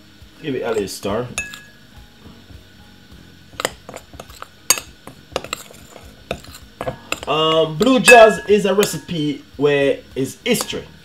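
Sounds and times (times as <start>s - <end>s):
spoon clinking and scraping glass: 0.7s - 1.8s, 3.5s - 7.4s, 8.0s - 9.2s.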